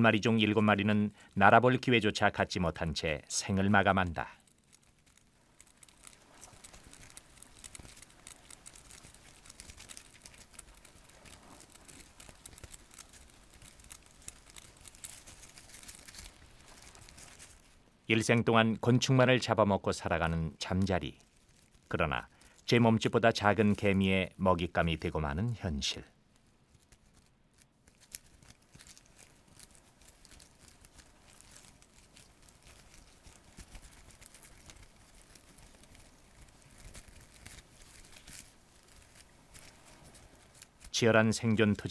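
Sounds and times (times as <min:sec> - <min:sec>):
faint dense crackling and ticking: 0:00.0 - 0:41.9.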